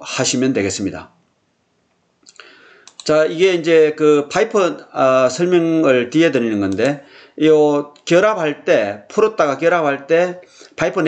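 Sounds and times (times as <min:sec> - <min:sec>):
speech: 0:00.0 - 0:01.2, 0:03.0 - 0:11.0
computer mouse click: 0:02.3 - 0:03.1.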